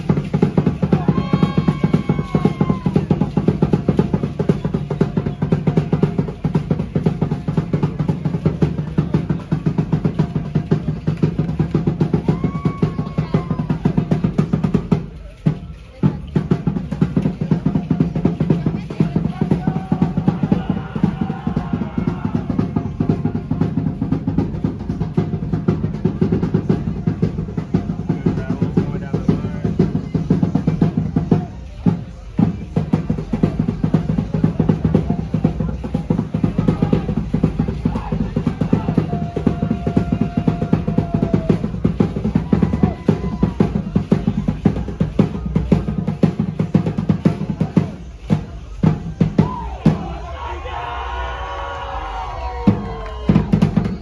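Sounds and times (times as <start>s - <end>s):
fast driving drumming: 0.0s - 54.0s.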